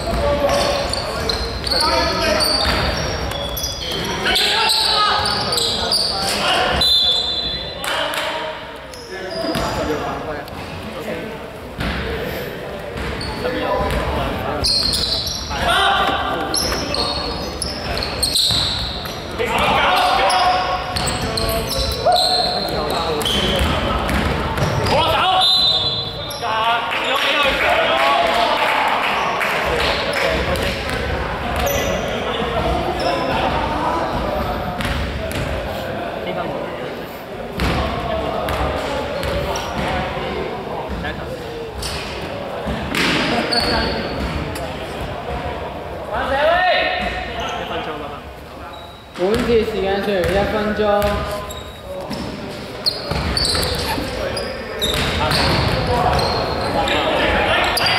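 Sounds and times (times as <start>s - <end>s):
basketball bouncing on court: 23.1s - 25.0s, 34.8s - 35.5s, 37.6s - 37.8s, 49.3s - 49.6s, 50.2s - 51.3s, 53.0s - 53.9s, 54.8s - 56.6s.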